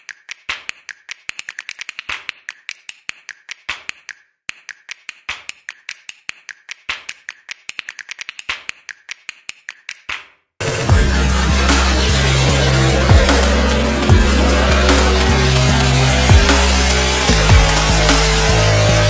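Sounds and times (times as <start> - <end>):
sharp clicks and taps: 0.0 - 10.3.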